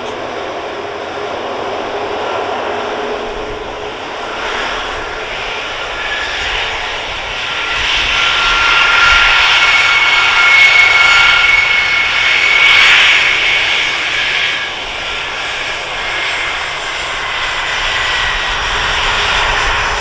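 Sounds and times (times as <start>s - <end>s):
jet engines whining: 0.0s - 20.0s.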